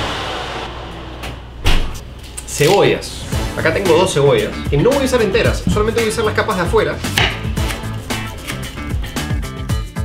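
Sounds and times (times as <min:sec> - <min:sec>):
oven door thump: 0:01.6 - 0:02.0.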